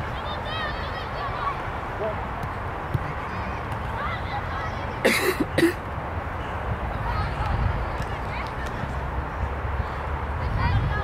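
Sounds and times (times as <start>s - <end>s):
faint distant voices: 0.0s - 11.0s
young footballers shouting: 3.3s - 5.8s.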